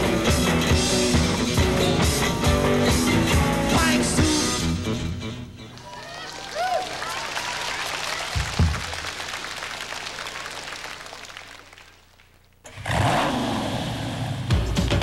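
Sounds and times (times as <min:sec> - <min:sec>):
audience applause: 0:05.7 - 0:12.4
drum beat: 0:08.3 - 0:09.0
low thump: 0:08.4 - 0:09.0.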